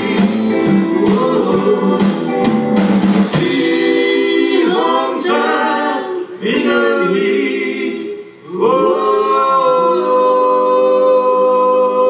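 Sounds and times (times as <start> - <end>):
live rock band playing: 0.0 - 4.3
drum and cymbal strikes: 0.0 - 5.0
voices singing held notes: 0.0 - 12.0.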